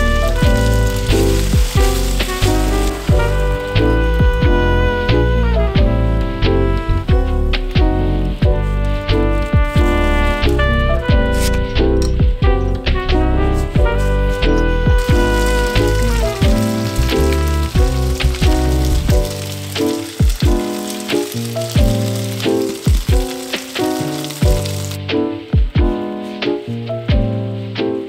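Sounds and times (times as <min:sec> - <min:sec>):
food sizzling: 0:00.0 - 0:05.7, 0:12.9 - 0:25.5
background music with steady beat: 0:00.0 - 0:19.5, 0:21.8 - 0:28.0.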